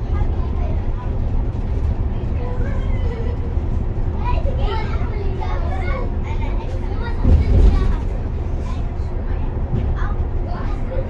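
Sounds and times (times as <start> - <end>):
bus rumbling: 0.0 - 11.0
passengers talking: 0.0 - 11.0.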